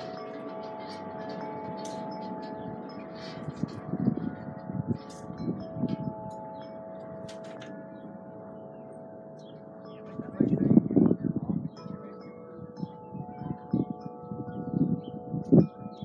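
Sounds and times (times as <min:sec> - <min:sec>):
wind chimes ringing: 0:00.0 - 0:16.0.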